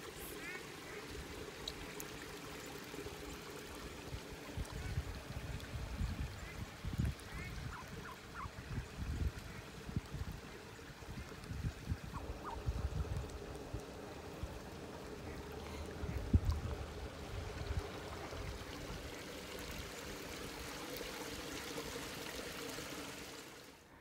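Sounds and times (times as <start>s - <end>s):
wind rumbling on microphone: 4.1s - 14.7s, 15.3s - 19.1s.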